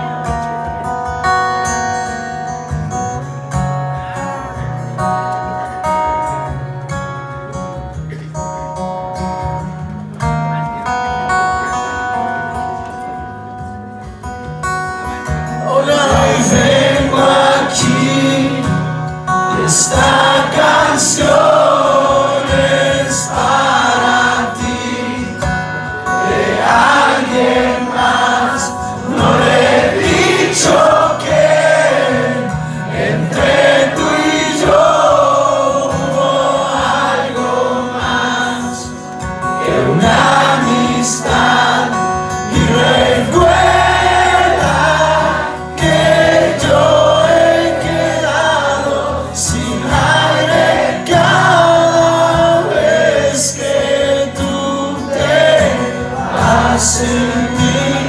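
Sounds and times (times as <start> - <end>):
guitars: 0.0 - 58.0.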